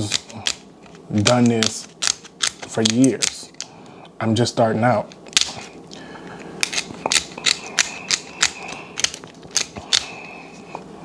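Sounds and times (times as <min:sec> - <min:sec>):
shears snipping crab shell: 0:00.0 - 0:00.6, 0:01.2 - 0:03.4, 0:06.6 - 0:10.2.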